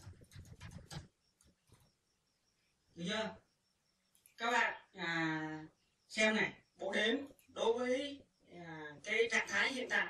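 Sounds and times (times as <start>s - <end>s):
keyboard key clicks: 0.0s - 1.8s.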